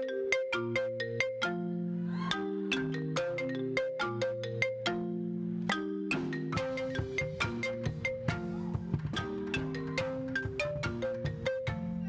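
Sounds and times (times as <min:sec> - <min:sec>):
marimba melody: 0:00.0 - 0:12.0.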